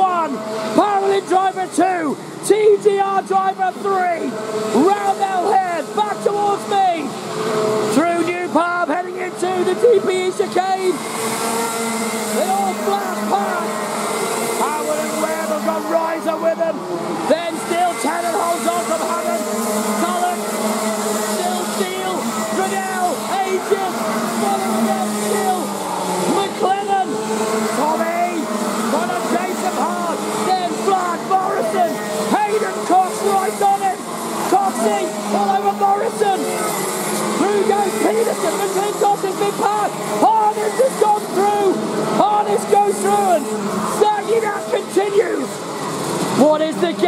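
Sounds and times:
kart engines racing: 0:00.0 - 0:47.0.

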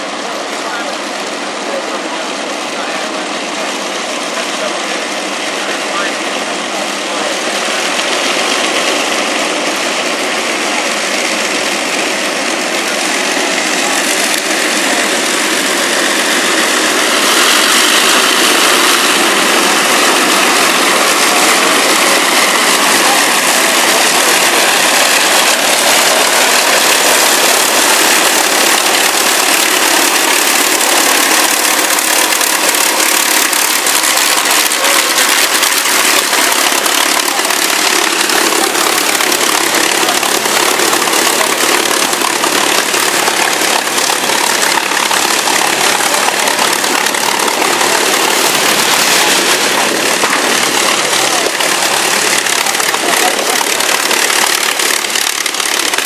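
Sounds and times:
propeller aircraft engines running: 0:00.0 - 0:56.0.

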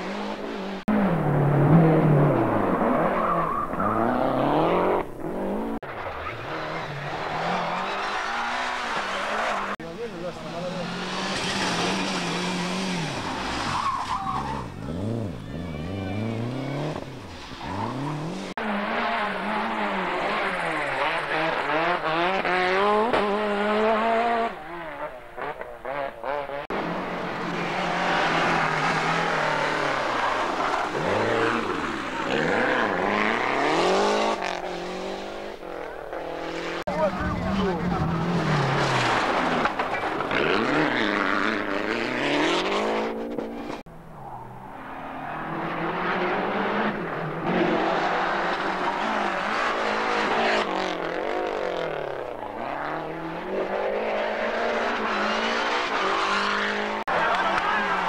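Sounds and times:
rally car engines revving past: 0:00.0 - 0:58.0.

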